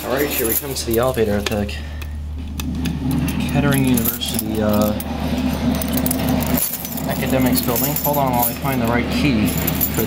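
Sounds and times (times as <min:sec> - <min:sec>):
steady low hum: 0:00.0 - 0:10.0
keys jangling: 0:03.2 - 0:10.0.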